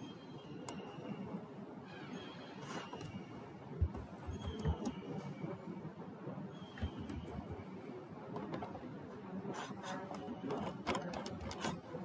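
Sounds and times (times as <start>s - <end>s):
computer mouse clicking: 9.6s - 11.8s.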